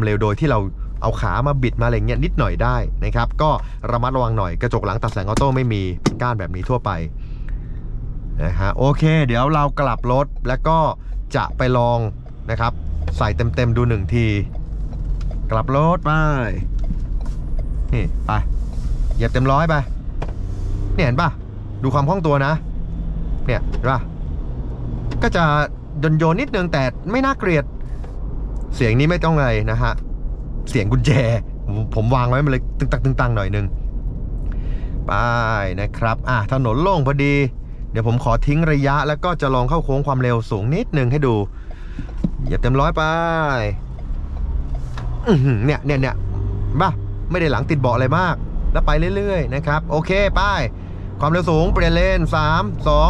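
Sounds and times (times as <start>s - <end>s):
diesel engine drone: 0.0s - 53.0s
road noise inside car: 0.0s - 53.0s.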